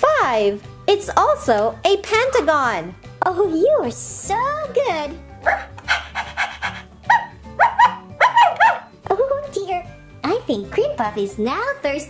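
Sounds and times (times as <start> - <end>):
light background music: 0.0 - 12.0
toy puppy yipping: 5.4 - 8.9
toy puppy panting: 5.5 - 7.3.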